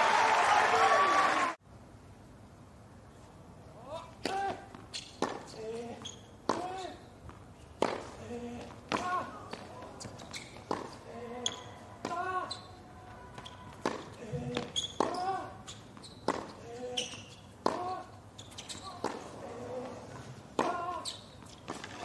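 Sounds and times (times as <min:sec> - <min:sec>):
racquets striking tennis ball: 0:04.2 - 0:12.7, 0:13.3 - 0:22.0
tennis ball bouncing: 0:04.2 - 0:12.7, 0:13.3 - 0:22.0.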